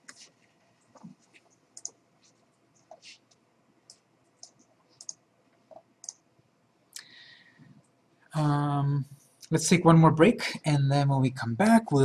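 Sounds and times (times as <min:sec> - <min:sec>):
computer mouse clicks: 0:00.9 - 0:02.0, 0:02.8 - 0:06.2.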